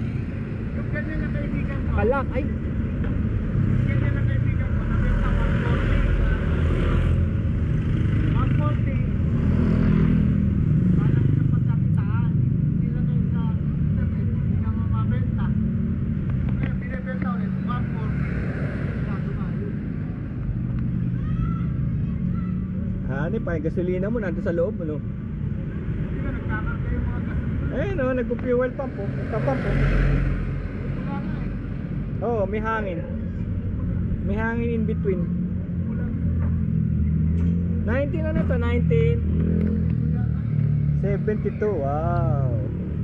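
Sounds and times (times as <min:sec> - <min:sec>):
voices talking: 0:00.0 - 0:43.0.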